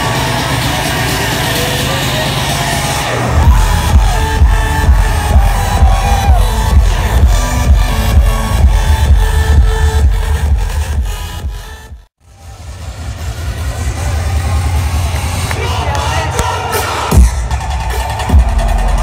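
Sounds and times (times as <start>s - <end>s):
crowd noise: 0.0s - 19.0s
electronic dance music with heavy bass: 0.0s - 19.0s
heavy bass hit: 3.2s - 11.6s.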